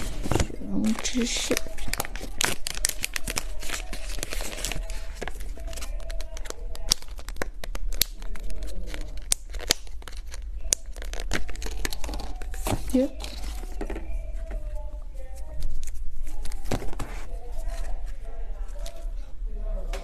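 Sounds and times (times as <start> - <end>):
plastic packaging crinkling: 0.0 - 13.9.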